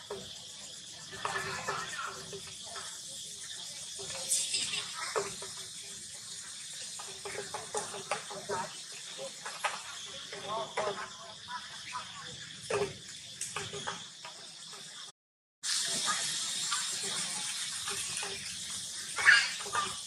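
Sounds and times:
high-pitched insect drone: 0:00.0 - 0:15.1.

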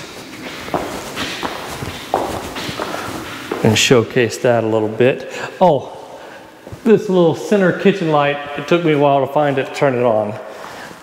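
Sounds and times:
footsteps on vinyl flooring: 0:00.0 - 0:04.2.

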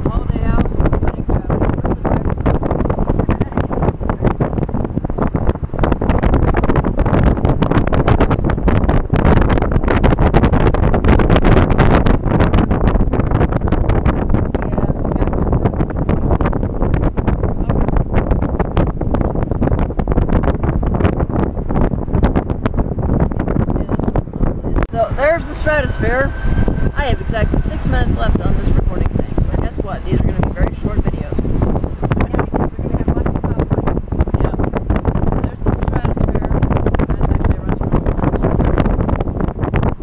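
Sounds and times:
car road noise: 0:00.0 - 0:40.0
wind buffeting microphone: 0:00.0 - 0:40.0.

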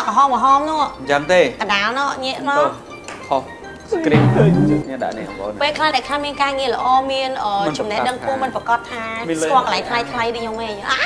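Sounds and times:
background music: 0:00.0 - 0:11.0
people talking: 0:04.1 - 0:04.9.

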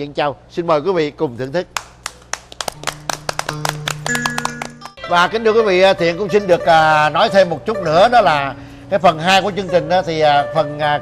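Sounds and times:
people clapping: 0:01.8 - 0:05.0.

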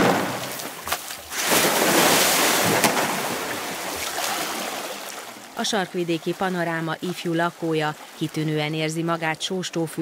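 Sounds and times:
water splashing: 0:00.0 - 0:10.0.

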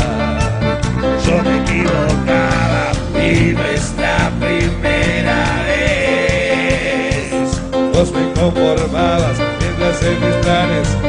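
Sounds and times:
accordion: 0:00.0 - 0:11.0
bass: 0:00.0 - 0:11.0
keyboards: 0:00.0 - 0:11.0
percussion: 0:00.0 - 0:11.0
person singing: 0:00.0 - 0:11.0.

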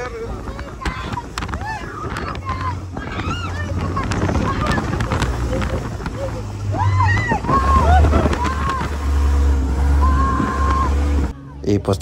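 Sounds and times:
wind on microphone: 0:00.0 - 0:11.4
people yelling and screaming: 0:00.0 - 0:11.6
buggy engine running hard: 0:00.0 - 0:12.0.

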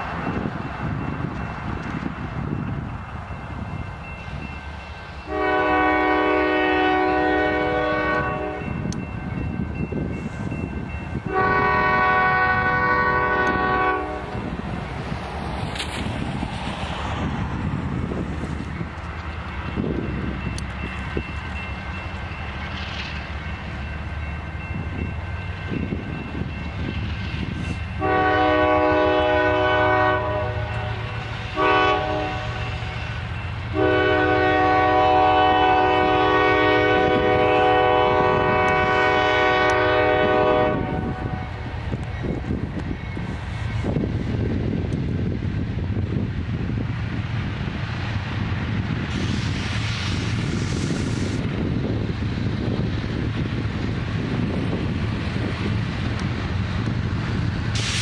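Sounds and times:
train rumble: 0:00.0 - 0:58.0
train air horn blasts: 0:05.2 - 0:08.8, 0:11.2 - 0:14.5, 0:27.6 - 0:41.8.

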